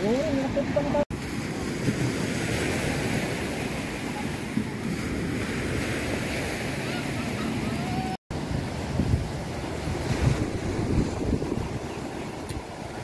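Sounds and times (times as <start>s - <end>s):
sea surf rushing: 0.0s - 13.0s
wind buffeting microphone: 0.0s - 13.0s.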